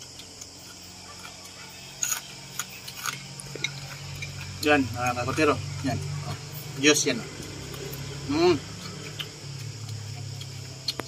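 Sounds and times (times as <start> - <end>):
wet chewing clicks and smacks: 0.0 - 11.0.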